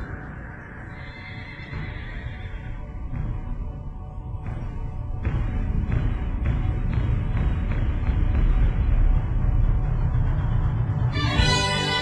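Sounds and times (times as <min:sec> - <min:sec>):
backing music: 0:01.6 - 0:12.0.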